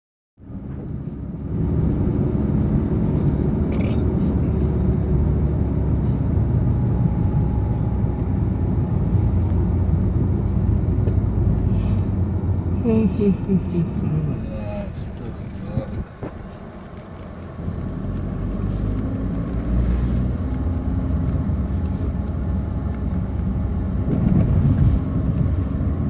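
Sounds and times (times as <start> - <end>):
car interior engine and tyre noise: 0.4 - 26.0.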